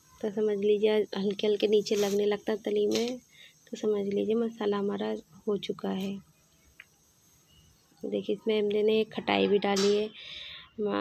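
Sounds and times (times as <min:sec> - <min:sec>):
woman speaking: 0:00.2 - 0:06.2, 0:08.0 - 0:10.2, 0:10.8 - 0:11.0.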